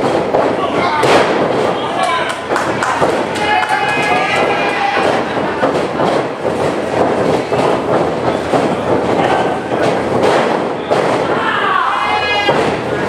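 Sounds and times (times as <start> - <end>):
crowd din: 0.0 - 13.0.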